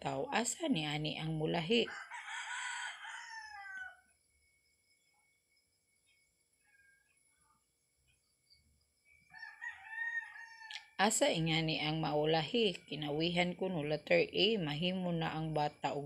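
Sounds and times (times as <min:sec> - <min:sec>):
rooster crowing: 0:01.9 - 0:04.1, 0:09.3 - 0:10.8.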